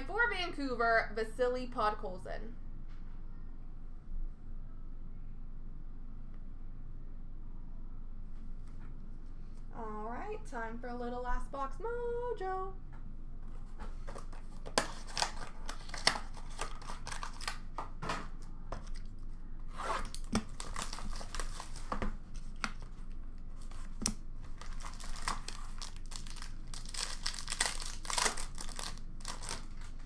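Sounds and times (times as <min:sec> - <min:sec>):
plastic wrap and cardboard tearing: 0:14.2 - 0:17.8, 0:19.7 - 0:23.0, 0:23.6 - 0:30.0.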